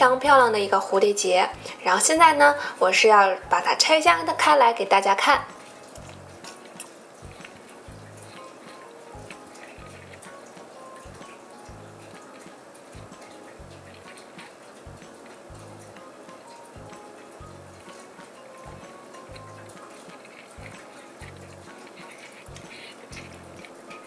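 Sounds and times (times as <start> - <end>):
quiet background music: 0.0 - 24.0.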